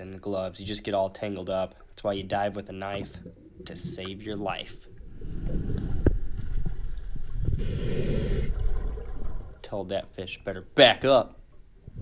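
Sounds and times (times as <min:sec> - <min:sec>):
scuba bubbles: 0:02.8 - 0:09.6
underwater water rumble: 0:04.6 - 0:09.6.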